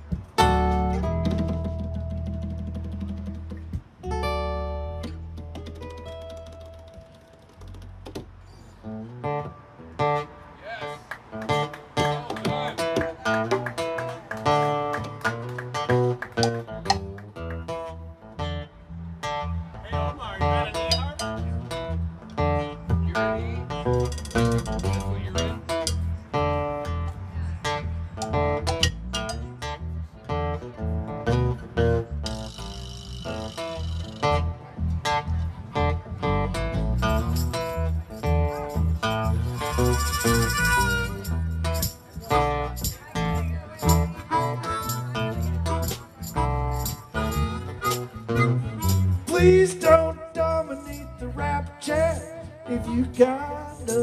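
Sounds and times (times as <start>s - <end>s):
electric bass: 0.0s - 10.5s, 11.2s - 54.0s
strummed acoustic guitar: 0.0s - 54.0s
harmonica: 39.4s - 41.9s, 44.0s - 49.9s.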